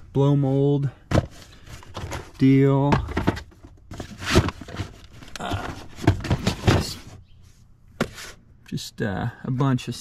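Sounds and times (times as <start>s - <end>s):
handling knocks and rustles: 1.1s - 7.3s.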